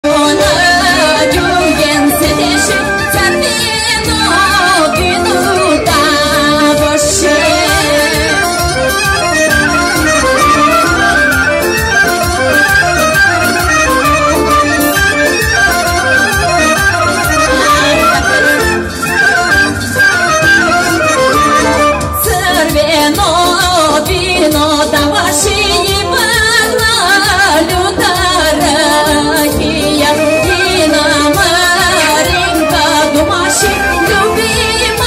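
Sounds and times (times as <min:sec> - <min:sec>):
woman singing: 0:00.0 - 0:09.0, 0:22.1 - 0:35.0
folk dance music over pa: 0:00.0 - 0:35.0.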